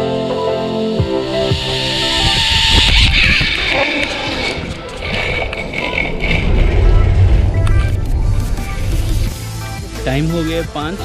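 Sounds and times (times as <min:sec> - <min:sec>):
wind buffeting microphone: 0:02.0 - 0:09.6
faint background music: 0:06.2 - 0:11.0.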